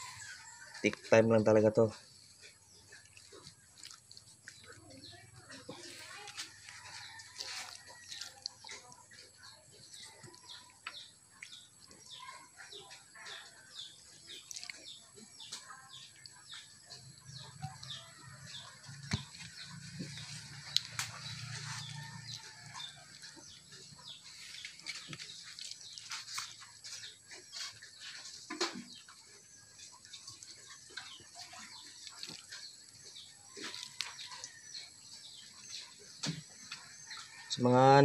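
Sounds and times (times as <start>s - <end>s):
small birds chirping: 0.0s - 38.0s.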